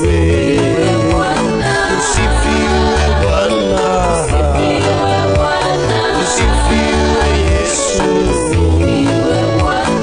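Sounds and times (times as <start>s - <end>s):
gospel worship music: 0.0s - 10.0s.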